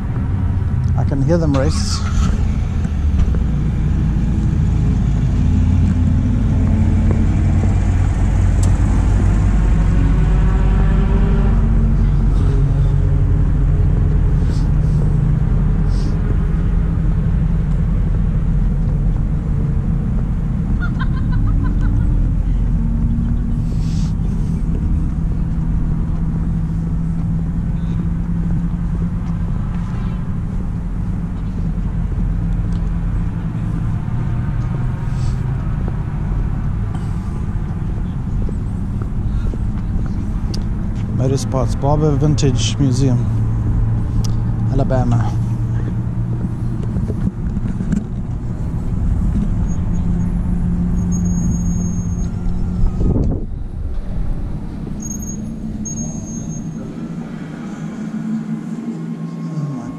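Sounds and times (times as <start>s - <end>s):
racing car engines accelerating: 0.0s - 59.9s.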